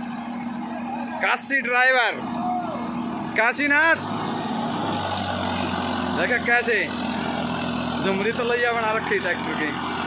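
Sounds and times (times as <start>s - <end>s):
tractor diesel engine running: 0.0s - 10.0s.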